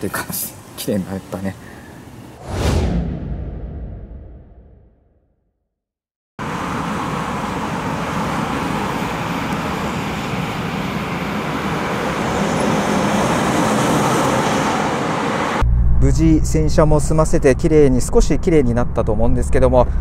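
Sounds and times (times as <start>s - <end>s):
train rushing past: 6.5s - 15.6s.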